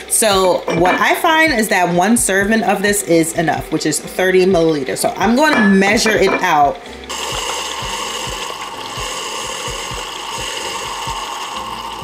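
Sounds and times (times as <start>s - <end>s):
coffee machine whirring hum: 0.0s - 12.0s.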